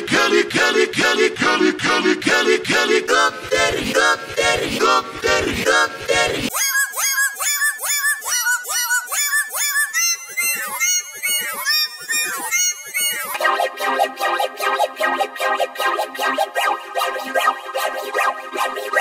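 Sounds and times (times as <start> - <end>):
synthetic singing with effects: 0.0 - 19.0.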